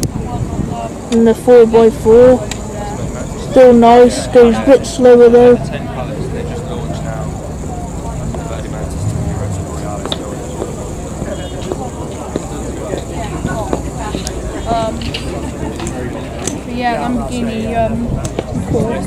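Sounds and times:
people chattering: 0.0 - 19.0
low steady hum: 8.0 - 11.1.

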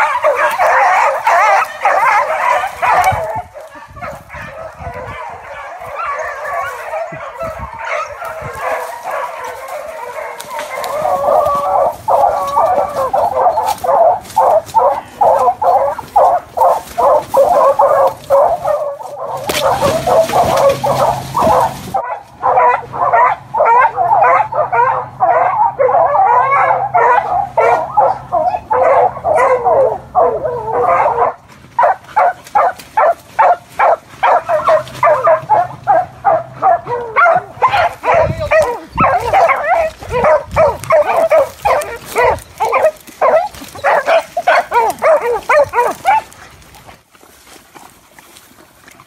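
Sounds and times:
beagles baying: 0.0 - 46.4.

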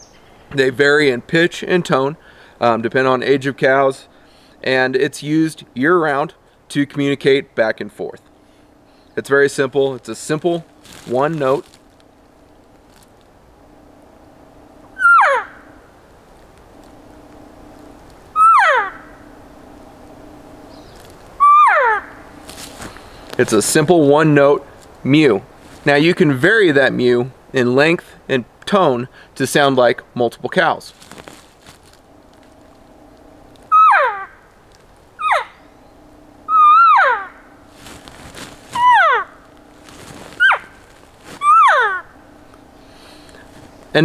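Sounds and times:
elk mew call: 15.0 - 15.6, 33.7 - 34.3, 36.5 - 37.4, 38.8 - 39.3, 41.4 - 42.1.

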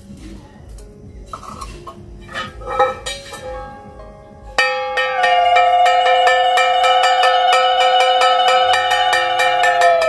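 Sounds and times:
brass hand bell ringing: 4.6 - 10.0.

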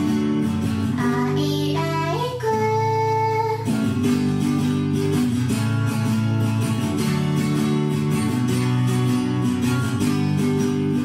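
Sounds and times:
strummed acoustic guitar: 0.0 - 11.0
person singing: 0.9 - 4.0.

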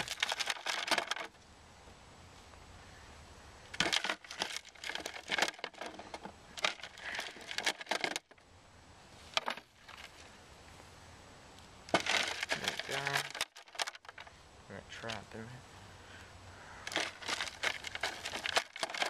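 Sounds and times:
soil sifter shaken: 0.0 - 1.3, 3.8 - 8.3, 11.9 - 14.3, 16.9 - 19.0
dirt and stones rattling through mesh: 0.0 - 1.4, 3.7 - 8.4, 9.2 - 10.3, 11.8 - 15.6, 16.8 - 19.0.

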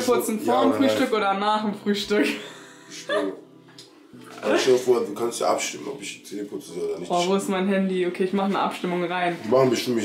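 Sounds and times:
person speaking: 4.2 - 7.4.

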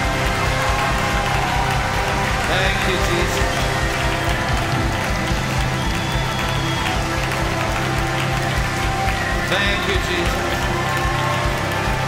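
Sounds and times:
congregation clapping along: 0.0 - 12.0
live band playing upbeat praise music: 0.0 - 12.0.

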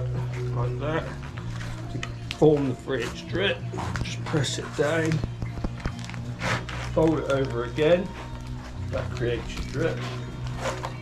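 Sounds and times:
background music: 0.0 - 11.0
roofing felt crackling clicks: 5.0 - 7.6.

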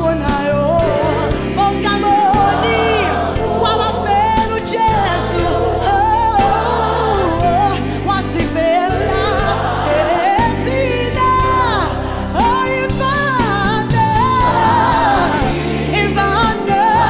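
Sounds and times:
band with keyboards bass and drums: 0.0 - 17.0
gospel choir singing: 0.0 - 17.0
lead voice singing: 0.0 - 17.0.

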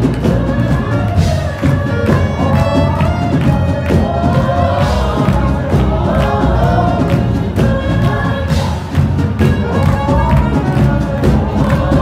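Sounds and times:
band with heavy bass: 0.0 - 12.0
singers singing together: 0.0 - 12.0.

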